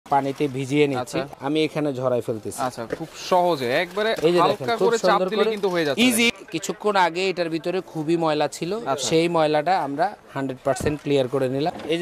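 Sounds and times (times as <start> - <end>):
man talking: 0.1 - 12.0.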